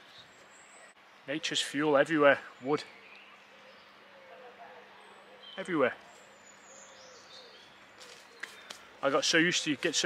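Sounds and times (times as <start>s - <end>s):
faint bird calls: 2.4s - 9.9s.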